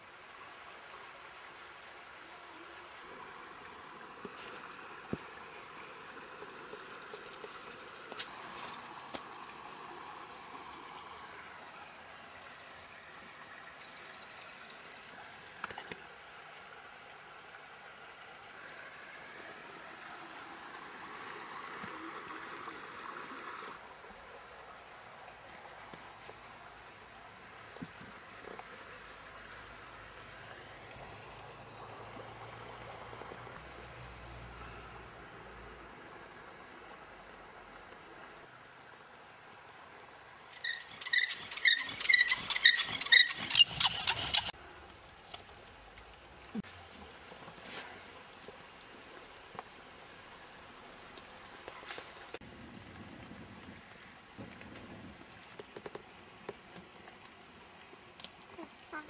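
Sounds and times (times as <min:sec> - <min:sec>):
faint outdoor ambience: 0:00.0 - 0:59.0
sharp ringing scraping strikes: 0:40.6 - 0:44.5.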